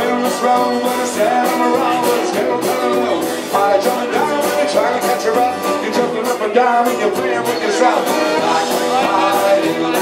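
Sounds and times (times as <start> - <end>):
acoustic guitar strumming: 0.0 - 10.0
man singing folk song: 0.0 - 10.0.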